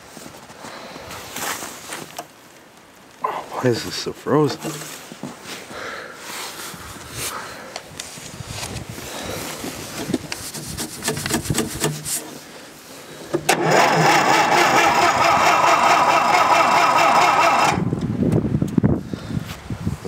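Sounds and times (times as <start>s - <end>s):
engine cranking whir: 13.4s - 17.9s
electric starter clicking: 13.4s - 18.0s.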